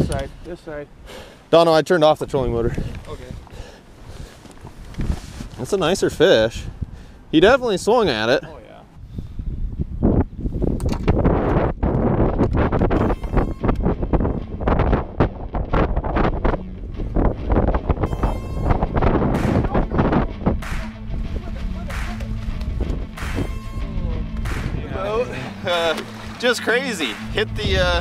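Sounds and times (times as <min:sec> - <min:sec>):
wind buffeting microphone: 0:00.0 - 0:00.4, 0:02.2 - 0:08.2, 0:08.9 - 0:26.4, 0:27.2 - 0:28.0
background music: 0:16.5 - 0:28.0.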